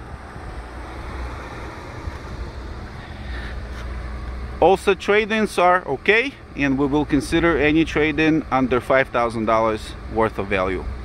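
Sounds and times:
wind rumbling on microphone: 0.0s - 4.4s
steady low hum: 0.0s - 11.0s.

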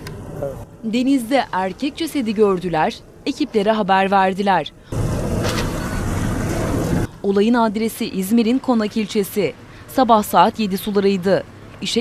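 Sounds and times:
boat engine running: 4.8s - 7.1s
broad rushing noise: 4.8s - 7.3s.

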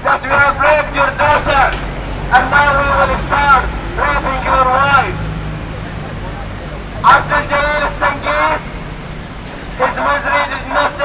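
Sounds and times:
man speaking through megaphone: 0.0s - 9.0s, 9.8s - 11.0s.

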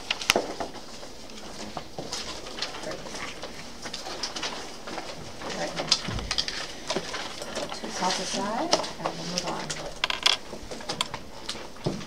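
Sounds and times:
papers rustling: 0.0s - 12.0s.

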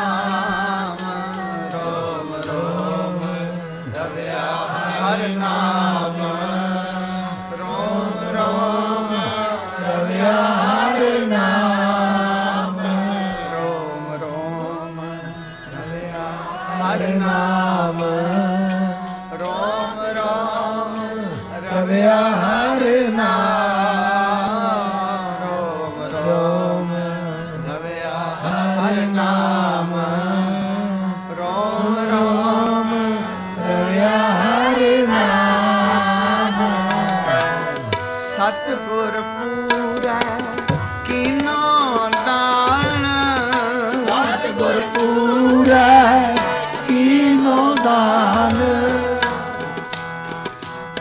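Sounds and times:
tabla beat: 0.0s - 12.6s, 36.8s - 38.5s, 39.6s - 51.0s
group chanting: 0.0s - 14.6s, 15.3s - 26.8s, 31.4s - 37.9s, 43.4s - 51.0s
harmonium note: 0.0s - 51.0s
men singing a hymn in unison: 0.0s - 51.0s.

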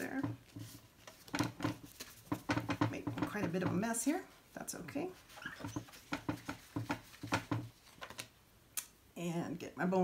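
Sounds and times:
paper envelope tapping on mat: 5.6s - 8.2s.

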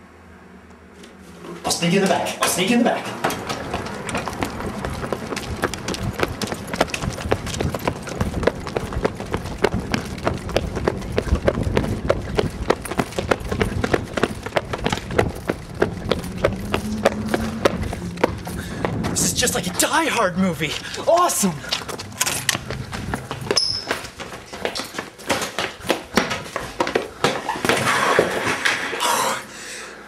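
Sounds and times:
running footsteps on pavement: 2.2s - 27.8s.

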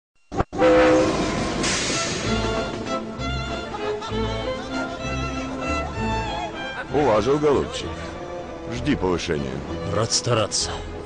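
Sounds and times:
steam locomotive whistle: 0.5s - 2.9s
hissing steam: 1.2s - 2.5s.

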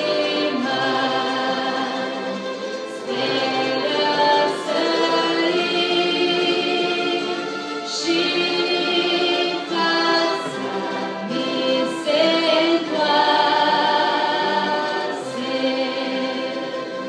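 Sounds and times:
choir singing a hymn: 0.0s - 17.0s
orchestra playing: 0.0s - 17.0s.

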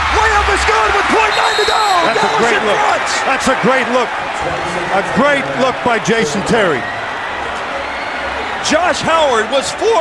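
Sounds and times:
commentator's voice: 0.0s - 6.8s
arena crowd noise: 0.0s - 10.0s.

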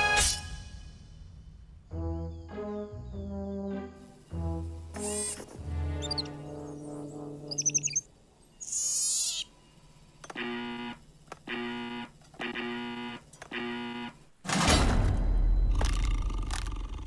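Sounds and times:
electronic chirps and sweep: 4.3s - 9.5s
buzzing electronic tones: 10.2s - 14.4s.

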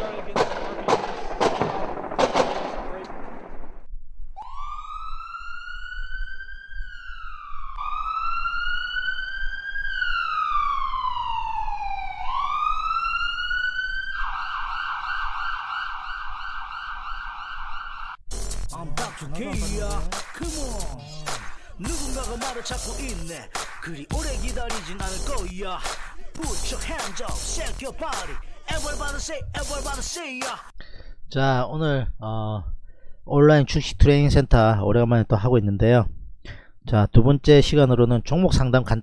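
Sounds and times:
sharp bangs: 0.0s - 3.9s
electronic siren wailing: 4.4s - 18.2s
music: 18.3s - 30.7s.

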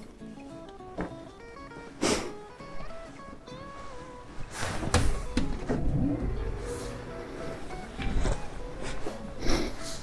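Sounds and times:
sliding door motor rumble: 4.9s - 8.4s.

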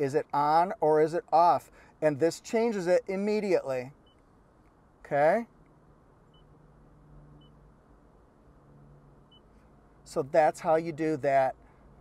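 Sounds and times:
touchscreen beeps: 6.3s - 6.5s, 9.3s - 9.5s.

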